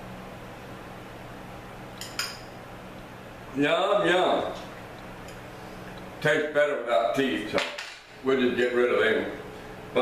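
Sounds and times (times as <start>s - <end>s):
faint room hum: 0.0s - 10.0s
spoon clinking against bowl: 2.0s - 2.5s.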